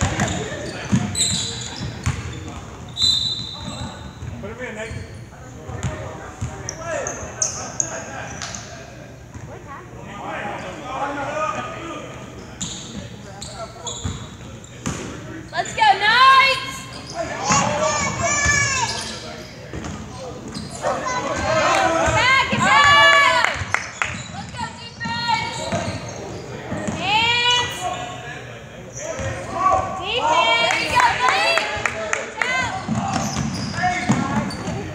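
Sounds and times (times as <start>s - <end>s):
voices echoing in hall: 0.0s - 34.9s.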